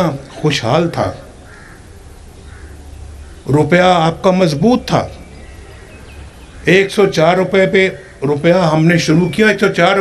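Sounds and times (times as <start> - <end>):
steady low hum: 0.0 - 9.8
faint bird calls: 0.1 - 3.7, 5.0 - 7.0, 7.6 - 9.8.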